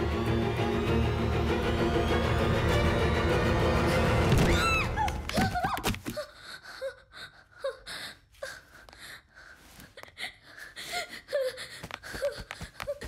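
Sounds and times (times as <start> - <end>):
woman gasping and whimpering: 4.8 - 13.0.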